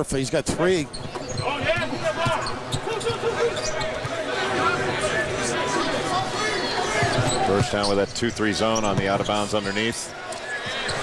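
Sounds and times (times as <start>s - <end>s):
crowd noise: 0.0s - 11.0s
sneakers squeaking on hardwood: 0.9s - 4.2s, 6.6s - 9.8s.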